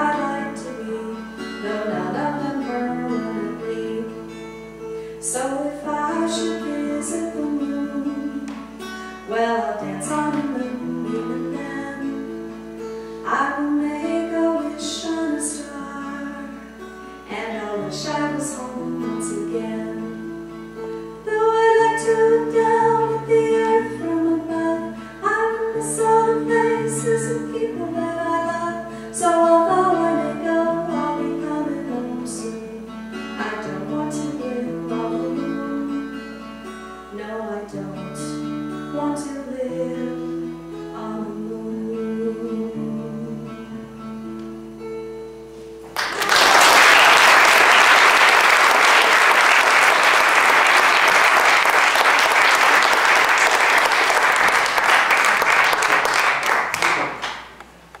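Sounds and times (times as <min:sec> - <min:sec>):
woman singing: 0:00.0 - 0:04.4, 0:05.2 - 0:08.7, 0:09.3 - 0:12.5, 0:13.2 - 0:20.4, 0:21.2 - 0:36.4, 0:37.1 - 0:44.0
acoustic guitar strumming: 0:00.0 - 0:46.1
audience applause: 0:46.0 - 0:57.5.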